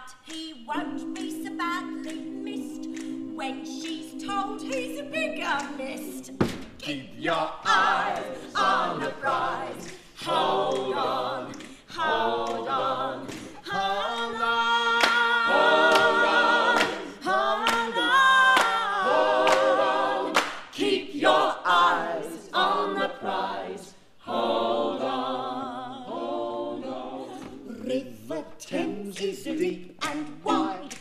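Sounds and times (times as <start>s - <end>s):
voices singing in harmony: 0.0s - 31.0s.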